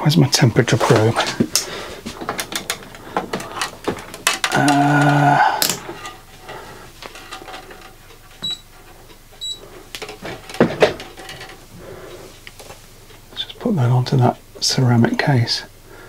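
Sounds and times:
handling clicks and rustle: 0.7s - 9.1s
multimeter high beeps: 8.4s - 8.7s, 9.4s - 9.6s.

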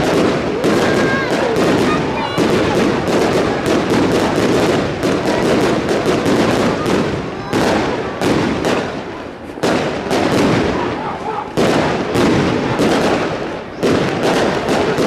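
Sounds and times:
fireworks bursting with sharp bangs: 0.0s - 15.0s.

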